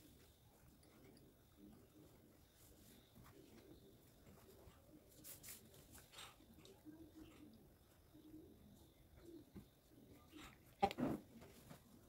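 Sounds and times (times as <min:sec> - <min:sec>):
faint low cooing: 0:03.2 - 0:11.9.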